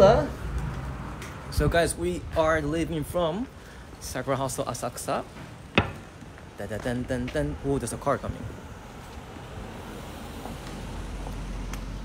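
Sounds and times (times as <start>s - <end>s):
car passing: 7.5s - 12.0s.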